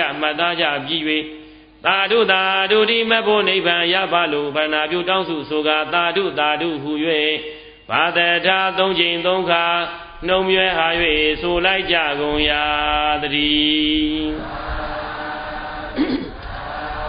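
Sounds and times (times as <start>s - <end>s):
person chanting: 0.0s - 17.0s.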